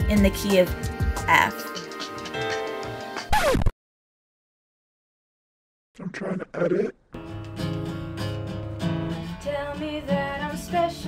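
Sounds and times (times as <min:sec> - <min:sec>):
acoustic guitar plucked chords: 0:07.2 - 0:11.0.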